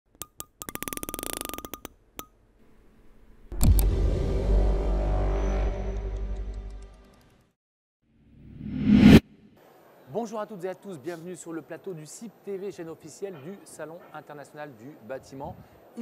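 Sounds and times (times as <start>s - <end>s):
sharp clicks and ticks: 0.1s - 2.4s
heavy hit with low boom: 3.5s - 6.2s.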